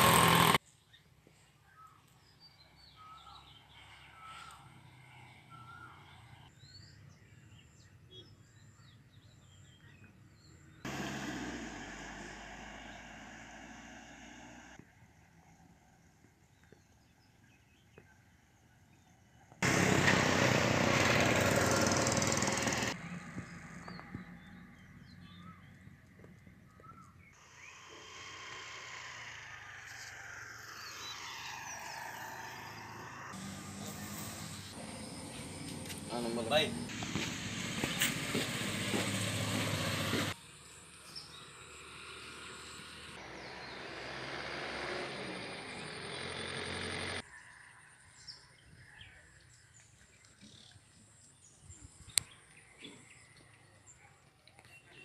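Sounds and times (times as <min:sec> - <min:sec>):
outdoor background noise: 0:00.0 - 0:55.0.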